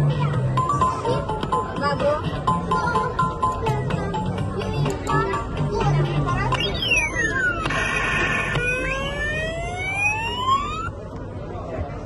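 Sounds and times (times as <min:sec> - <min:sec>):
claw machine electronic sound effect: 0:06.5 - 0:10.9.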